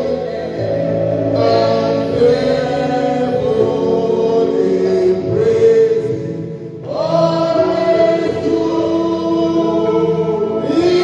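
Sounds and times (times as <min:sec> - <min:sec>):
man singing gospel song: 0:00.0 - 0:11.0
voices singing along: 0:00.0 - 0:11.0.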